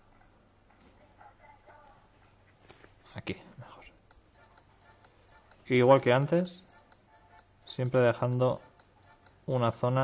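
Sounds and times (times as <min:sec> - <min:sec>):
person whispering faintly: 0:03.0 - 0:04.0.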